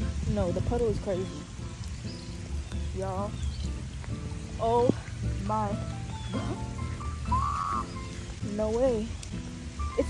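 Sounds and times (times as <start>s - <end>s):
background music with sustained notes: 0.0s - 10.0s
rain falling: 0.0s - 10.0s.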